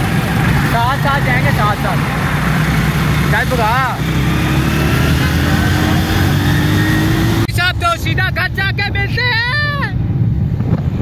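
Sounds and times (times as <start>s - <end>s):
vehicle engine running: 0.0s - 8.5s.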